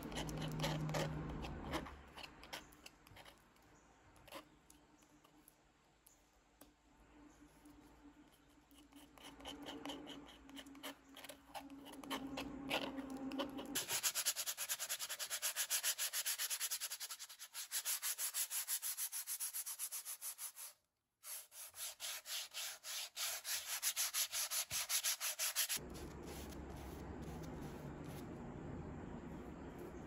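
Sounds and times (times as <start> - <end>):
sandpaper rubbing on canvas: 11.7 - 28.2
low room hum: 25.8 - 30.0.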